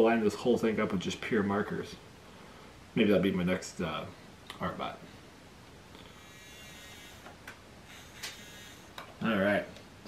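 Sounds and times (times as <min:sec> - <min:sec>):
small motor buzzing: 0:06.0 - 0:09.0.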